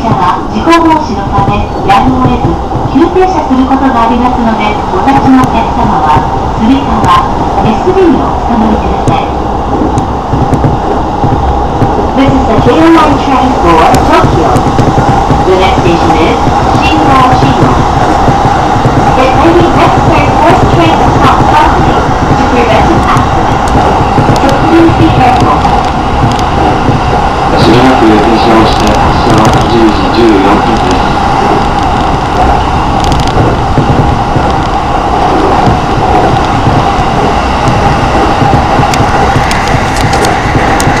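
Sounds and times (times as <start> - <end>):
constant hum: 0.0 - 41.0
train wheels rumbling on track: 0.0 - 41.0.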